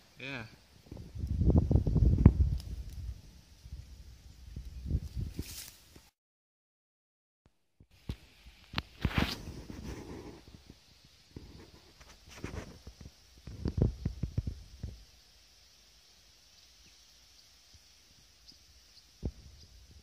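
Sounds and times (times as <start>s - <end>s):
faint outdoor background: 0.0s - 6.2s, 7.5s - 20.0s
wind buffeting and handling noise: 0.8s - 6.1s, 8.0s - 15.0s.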